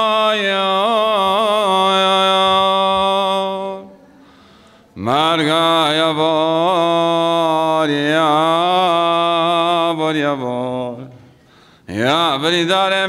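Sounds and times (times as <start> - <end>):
man chanting: 0.0 - 4.1, 5.0 - 11.2, 11.9 - 13.0.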